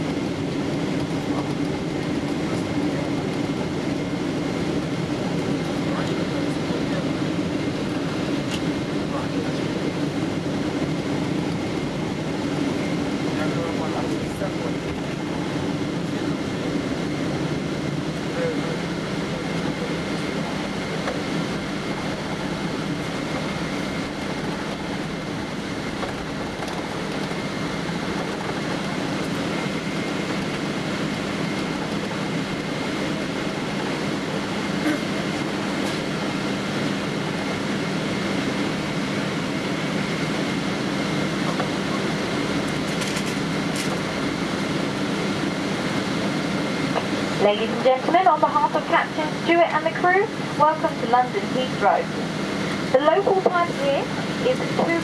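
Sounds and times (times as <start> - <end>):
aircraft engines and air conditioning hum: 0.0 - 55.0
airliner rolling rumble: 0.0 - 55.0.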